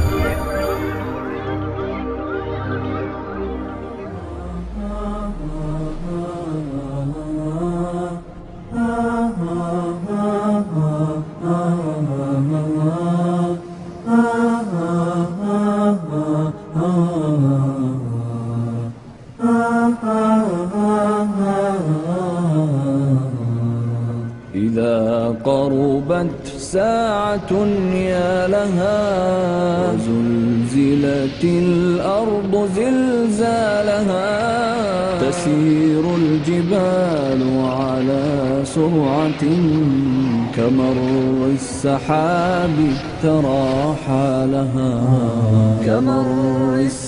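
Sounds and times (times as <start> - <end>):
man chanting unaccompanied: 21.6 - 47.0.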